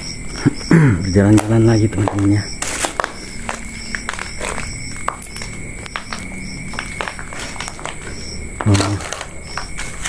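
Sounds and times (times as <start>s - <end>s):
night insects chirping: 0.0s - 10.0s
footsteps crunching over dry leaves: 1.4s - 10.0s.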